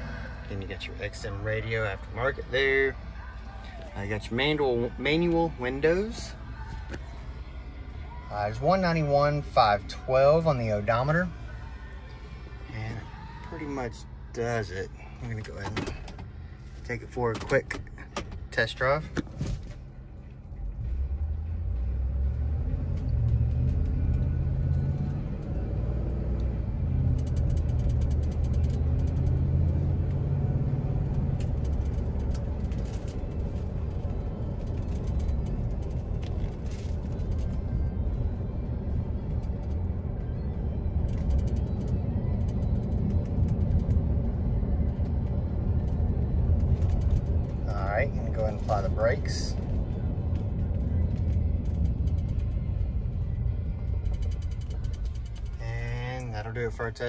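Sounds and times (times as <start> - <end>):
engine and tire drone: 0.0 - 57.0
pickup truck engine accelerating: 0.0 - 57.0.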